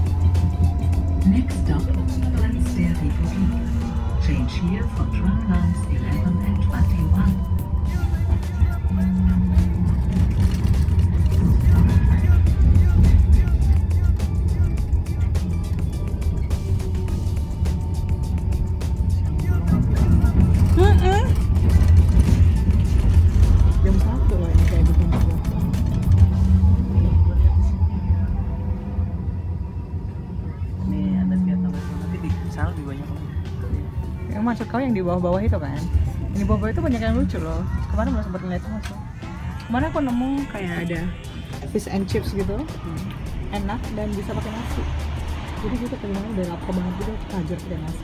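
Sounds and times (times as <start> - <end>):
tram rumbling and rattling: 0.0 - 48.0.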